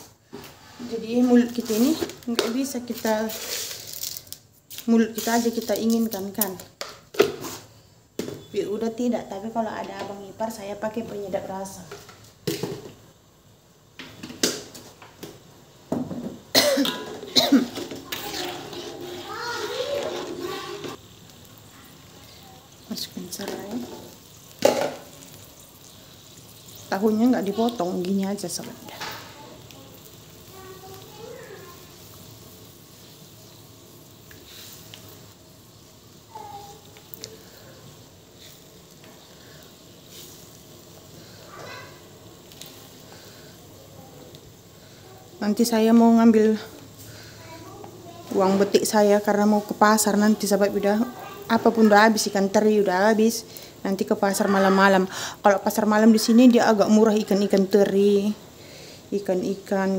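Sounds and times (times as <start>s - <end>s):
faint steady hiss: 0.0s - 59.9s
child's voice: 17.8s - 21.0s, 21.7s - 22.8s, 28.8s - 32.1s, 36.3s - 37.4s, 41.4s - 42.0s, 43.7s - 45.4s, 46.6s - 49.2s, 50.1s - 52.4s, 54.3s - 55.0s.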